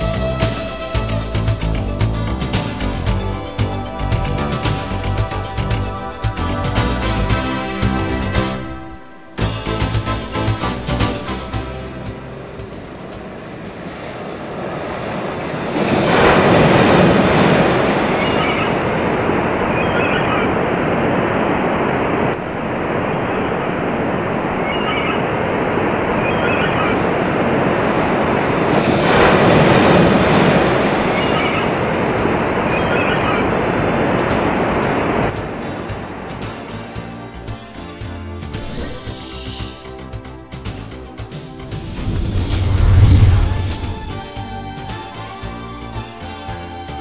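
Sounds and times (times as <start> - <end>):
waves breaking on rocks: 12.3 - 36.8.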